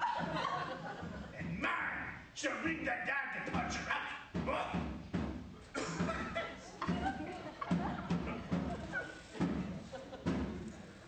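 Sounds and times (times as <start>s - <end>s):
battle drum beating: 0.0s - 10.7s.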